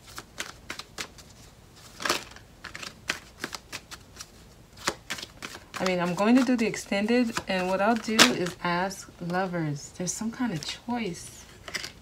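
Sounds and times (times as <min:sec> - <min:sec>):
cards being shuffled: 0:00.0 - 0:09.5, 0:11.5 - 0:12.0.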